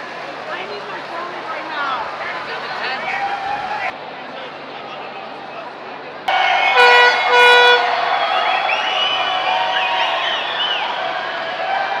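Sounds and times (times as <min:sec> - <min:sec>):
crowd shouting and whooping: 0:02.7 - 0:04.0, 0:06.3 - 0:12.0
air horn blasts: 0:06.6 - 0:08.1.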